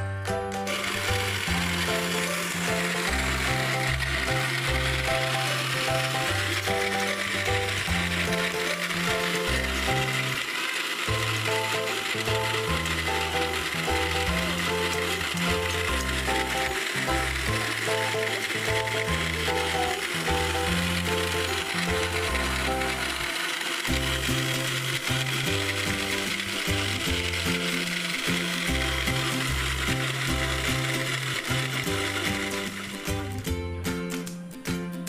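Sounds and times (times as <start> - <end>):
electric blender running: 0.0 - 33.6
background music with bass line: 33.1 - 35.0.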